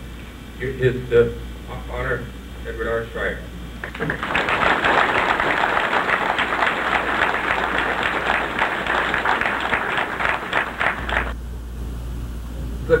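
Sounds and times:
audience applauding: 3.8 - 11.4.

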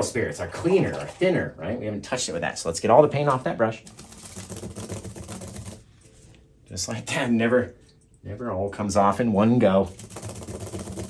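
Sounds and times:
paintbrush scrubbing: 3.9 - 5.8, 9.9 - 11.0.

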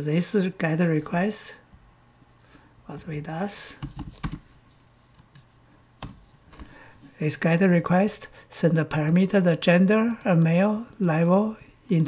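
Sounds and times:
computer keyboard typing: 3.8 - 4.5, 9.0 - 12.0.

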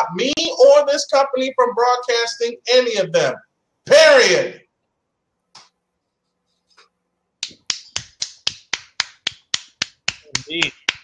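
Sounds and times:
sharp snaps: 7.4 - 11.0.

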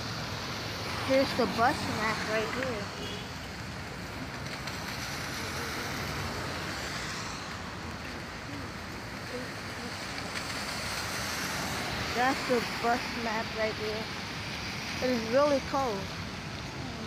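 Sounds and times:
rain: 0.0 - 17.0
traffic on wet street: 0.0 - 17.0.

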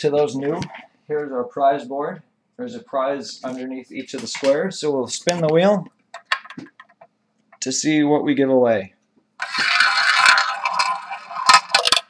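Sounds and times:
ball rolling in roulette wheel: 9.4 - 12.0.

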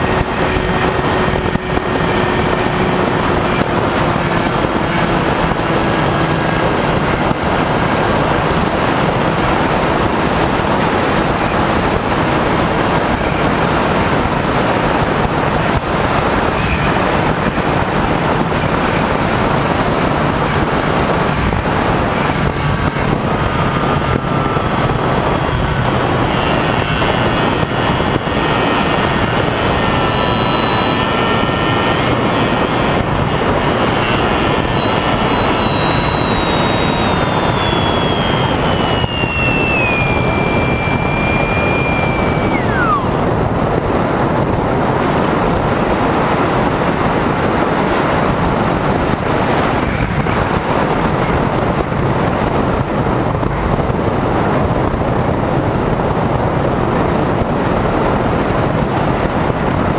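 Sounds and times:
electric motor whine: 0.0 - 59.9
wind rushing over camera: 0.0 - 59.9.

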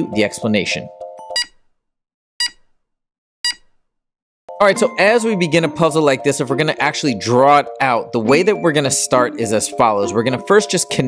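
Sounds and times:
short electronic beeps: 1.4 - 1.6, 2.4 - 2.6, 3.4 - 3.7.

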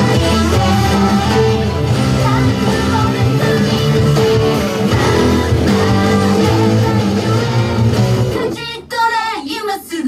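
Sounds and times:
electric guitars: 0.0 - 8.6
loud rock song: 0.0 - 8.6
high singing voice: 0.0 - 10.0.

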